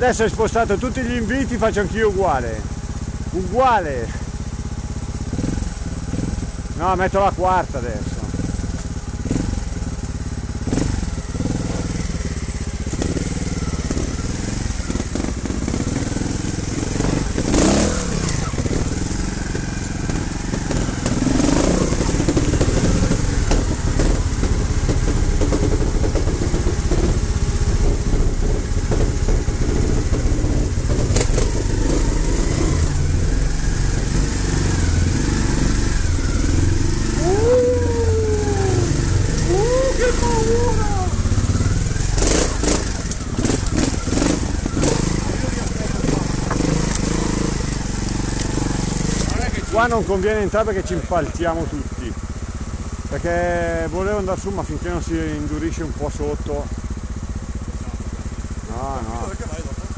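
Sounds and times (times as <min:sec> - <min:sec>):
motorcycle engine in a tunnel: 0:00.0 - 0:59.9.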